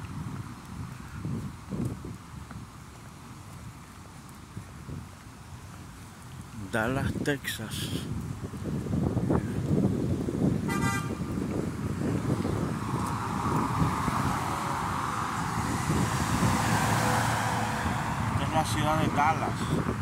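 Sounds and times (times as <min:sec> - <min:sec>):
city street traffic: 0:00.0 - 0:20.0
car horn toot: 0:10.7 - 0:11.3
vehicle passing close: 0:11.7 - 0:20.0.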